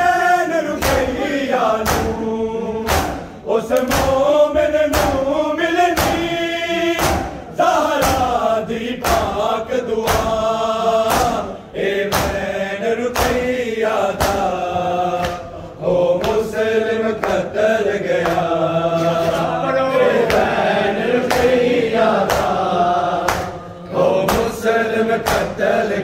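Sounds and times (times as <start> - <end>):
men chanting in chorus: 0.0 - 26.0
hands slapping chests: 0.8 - 2.2, 2.8 - 6.4, 7.0 - 7.4, 8.0 - 8.4, 9.0 - 12.5, 13.1 - 17.5, 18.1 - 18.6, 20.2 - 23.6, 24.2 - 25.6.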